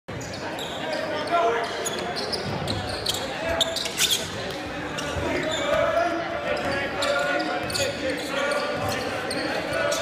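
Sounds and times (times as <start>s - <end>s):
spectators talking: 0.1s - 10.0s.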